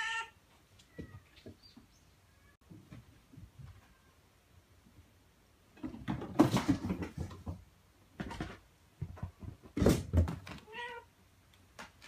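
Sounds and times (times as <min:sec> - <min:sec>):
cat meow: 0:00.0 - 0:01.3, 0:10.6 - 0:11.1.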